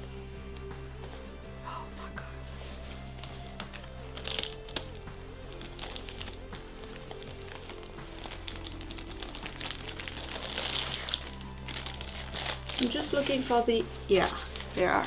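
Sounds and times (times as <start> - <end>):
soft background music: 0.0 - 15.0
satin and plastic rustling: 2.5 - 15.0.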